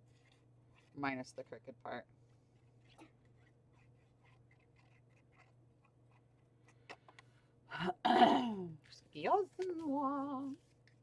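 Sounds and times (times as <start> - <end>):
paper rustling and scratching: 0.0 - 1.1, 2.3 - 6.5
person coughing: 7.8 - 8.7.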